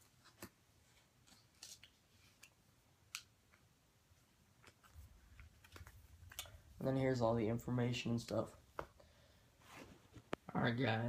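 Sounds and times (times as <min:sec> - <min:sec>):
packaging clicks and rustles: 0:04.6 - 0:06.6.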